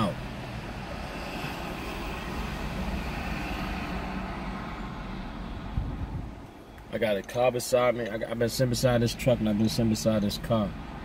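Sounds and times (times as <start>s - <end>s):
vehicle engine: 0.0s - 7.2s
traffic noise: 0.0s - 11.0s.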